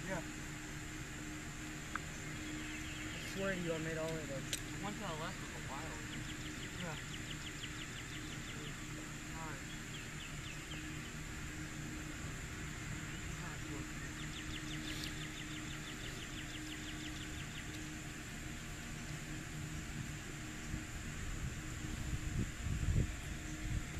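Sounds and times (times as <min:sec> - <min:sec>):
wind rumble on microphone: 0:19.4 - 0:23.9
wind gusts buffeting microphone: 0:19.8 - 0:23.9.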